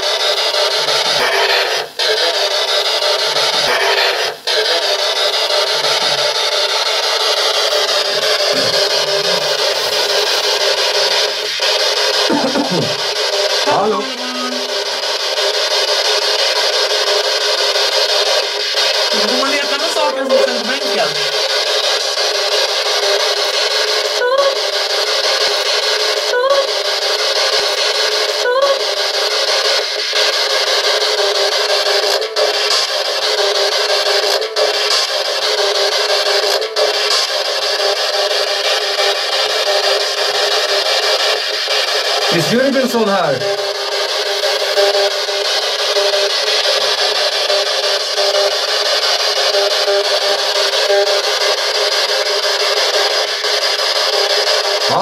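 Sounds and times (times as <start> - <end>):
radio static from small speaker: 0.0 - 55.0
voice-like snatches: 8.4 - 10.5.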